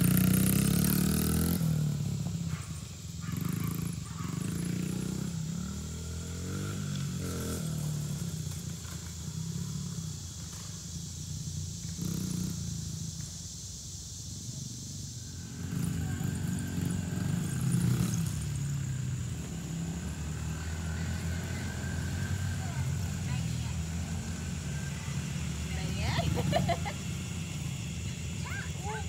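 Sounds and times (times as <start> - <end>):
dirt bike engine running: 0.0 - 29.0.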